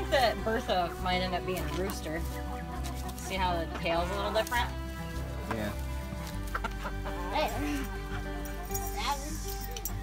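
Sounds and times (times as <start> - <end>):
hens clucking: 0.0 - 8.7
background music held notes: 0.0 - 10.0.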